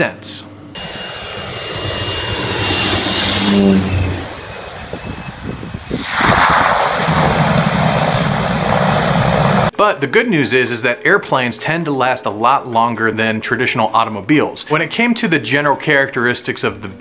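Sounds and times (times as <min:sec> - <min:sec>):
propeller plane flying overhead: 0:00.0 - 0:09.7.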